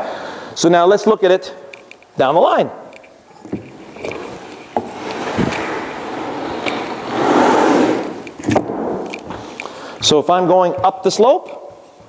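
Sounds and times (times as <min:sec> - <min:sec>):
wooden platform scraping on turf: 0:03.9 - 0:09.0.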